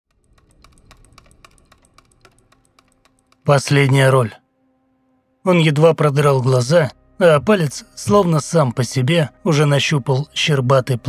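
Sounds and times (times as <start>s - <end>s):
keyboard typing clicks: 0.1s - 3.5s.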